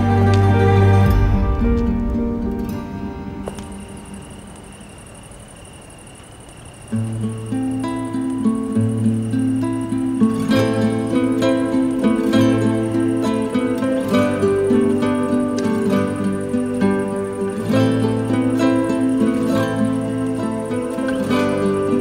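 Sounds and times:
background music: 0.0s - 4.1s, 10.6s - 22.0s.

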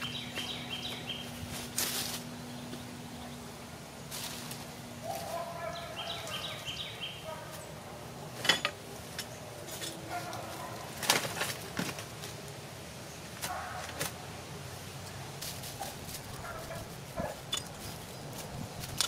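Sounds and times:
rustling in dry leaves and soil: 0.0s - 19.0s
animal calls: 5.0s - 7.7s.

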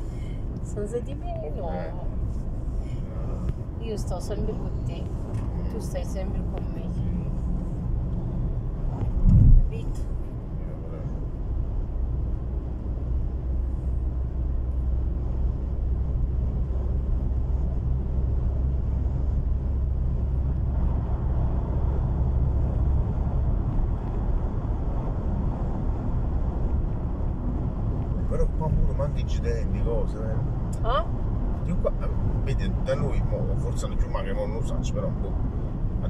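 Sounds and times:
car interior road rumble: 0.0s - 36.0s.

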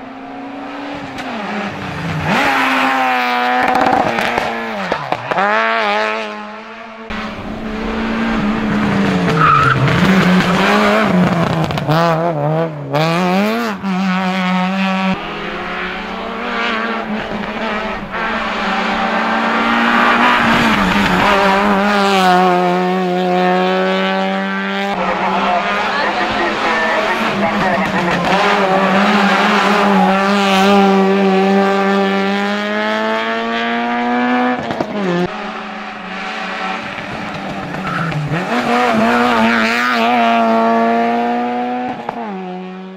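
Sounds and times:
rally car engine at high revs: 0.0s - 42.9s.

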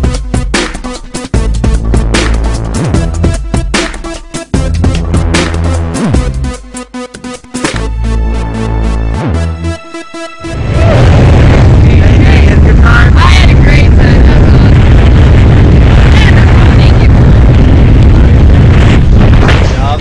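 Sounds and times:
wind buffeting microphone: 10.7s - 20.0s.

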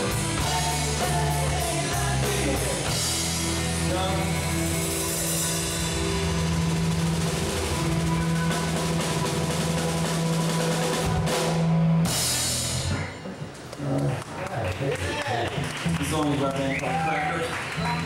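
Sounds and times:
held bass and guitar chord: 0.0s - 13.2s
drum roll: 0.0s - 13.4s.

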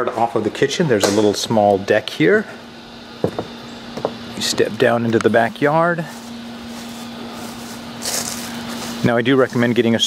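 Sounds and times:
steady low hum: 0.0s - 10.0s
rustling hiss: 6.0s - 10.0s.

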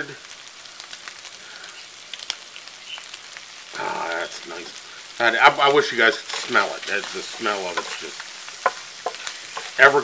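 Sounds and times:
shrimp sizzling in a skillet: 0.0s - 10.0s.

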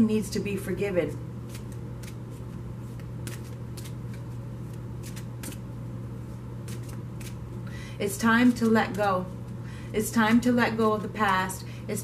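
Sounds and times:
cards being shuffled: 1.4s - 5.7s, 6.6s - 7.5s, 8.4s - 9.6s.

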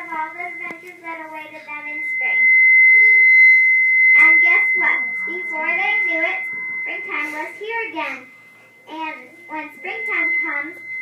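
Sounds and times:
high-pitched sound system tone: 0.0s - 11.0s.

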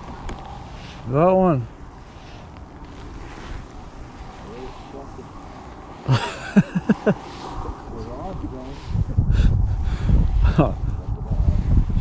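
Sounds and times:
man laughing: 6.0s - 7.2s.

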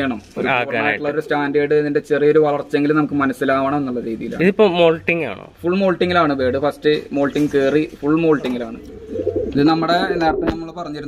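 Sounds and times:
pigeon cooing: 8.8s - 9.8s.

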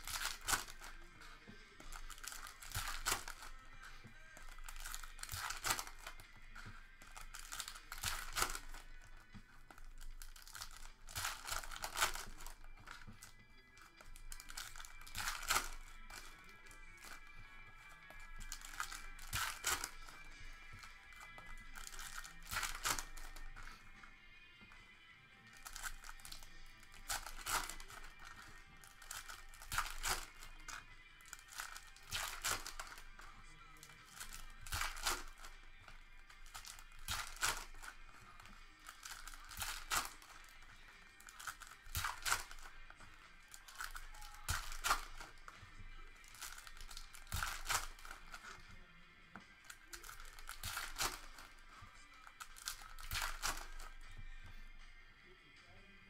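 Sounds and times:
foil wrappers crinkling and tearing: 0.0s - 24.2s, 25.5s - 48.7s, 49.6s - 54.8s
background music: 0.0s - 56.0s.

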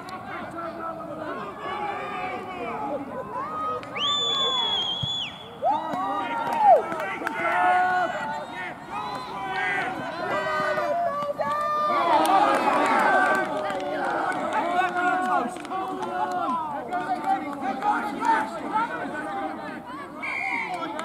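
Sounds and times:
referee whistle blast: 4.0s - 5.6s
people shouting: 5.6s - 16.7s.

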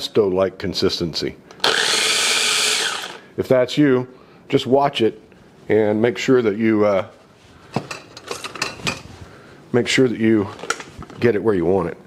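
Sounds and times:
kitchenware clicks and clinks: 7.8s - 9.0s.

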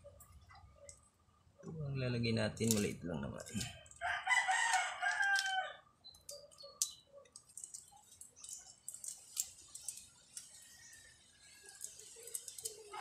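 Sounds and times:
rooster crowing: 4.0s - 5.8s.

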